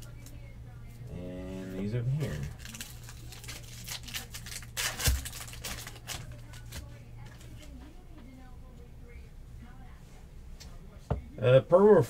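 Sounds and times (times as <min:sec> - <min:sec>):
faint low hum: 0:00.0 - 0:12.0.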